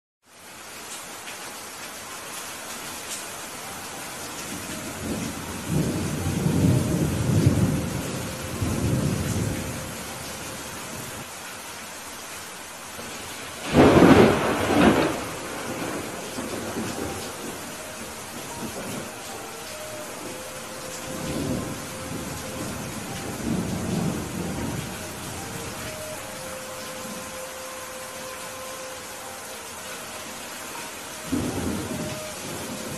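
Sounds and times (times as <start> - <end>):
heavy rain falling: 0.2 - 32.9
thunder rolling: 13.6 - 25.9.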